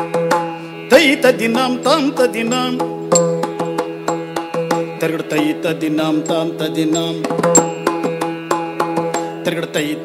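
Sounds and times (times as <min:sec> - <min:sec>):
person singing: 0:00.9 - 0:03.2, 0:04.9 - 0:08.2.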